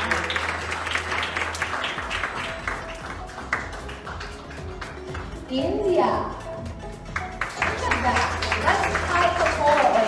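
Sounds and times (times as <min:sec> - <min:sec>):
audience clapping: 0:00.0 - 0:05.5, 0:06.9 - 0:10.0
background music: 0:00.0 - 0:10.0.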